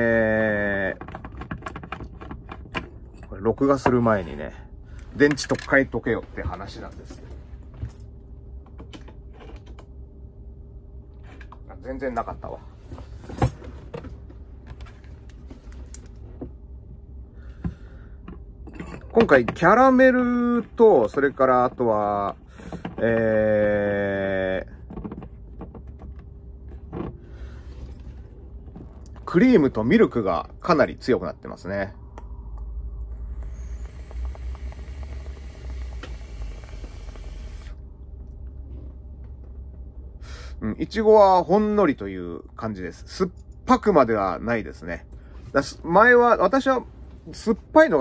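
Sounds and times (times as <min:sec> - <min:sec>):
vape coil sizzling hiss: 0:33.2 - 0:37.6.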